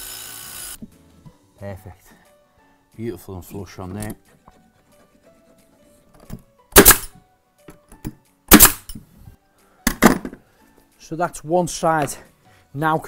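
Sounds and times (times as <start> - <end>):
faint background music: 0.2 - 13.0
pneumatic nail gun firing: 6.8 - 7.1, 8.5 - 9.0.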